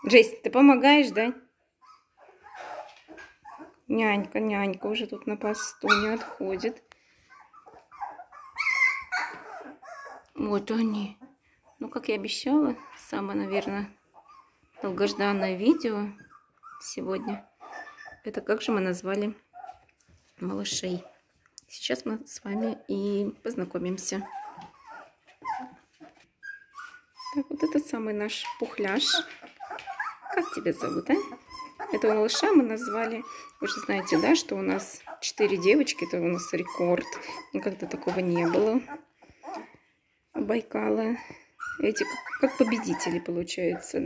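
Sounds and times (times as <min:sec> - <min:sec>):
puppies whimpering: 0:01.8 - 0:03.9, 0:04.8 - 0:18.4, 0:22.5 - 0:44.0.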